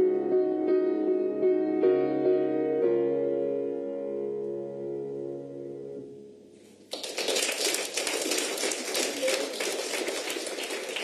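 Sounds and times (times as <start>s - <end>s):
audience applauding: 6.9s - 11.0s.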